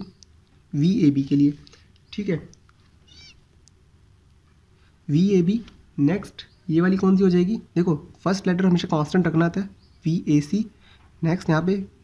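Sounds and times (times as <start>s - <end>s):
high-pitched animal call: 3.0s - 3.4s.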